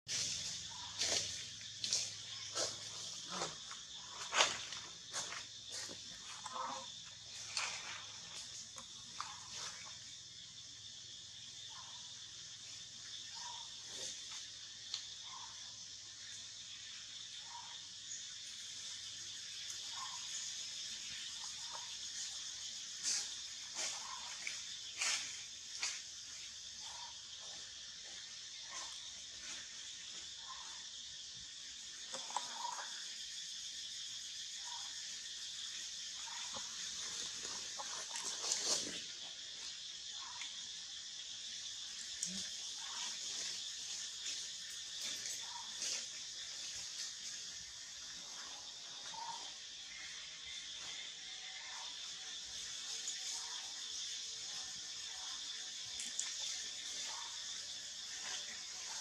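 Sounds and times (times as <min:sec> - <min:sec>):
high-pitched insect drone: 0:00.1 - 0:59.0.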